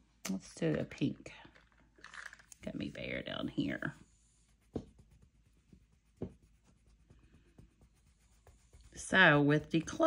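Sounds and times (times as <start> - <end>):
pencil scratching on paper: 3.8 - 10.0
soft tap: 4.7 - 5.2, 6.2 - 6.5.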